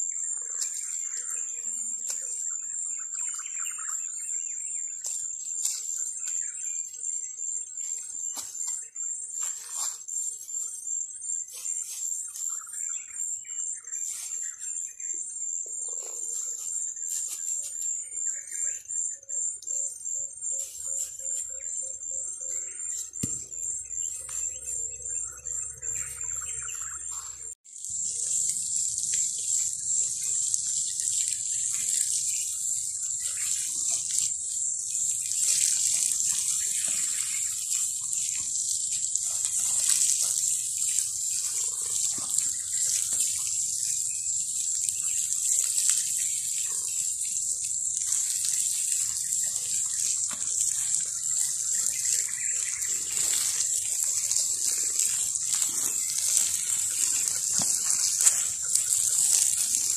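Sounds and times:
water pouring onto soil: 0.2s - 10.8s, 22.3s - 59.9s.

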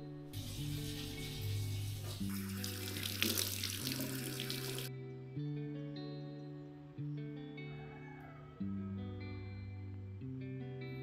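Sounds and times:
guitar music: 0.0s - 11.0s
tap water running into sink: 0.4s - 4.9s.

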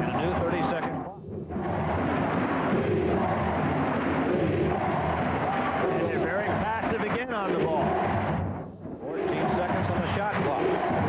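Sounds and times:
crowd murmur: 0.0s - 11.0s
man commentating: 9.1s - 10.9s.

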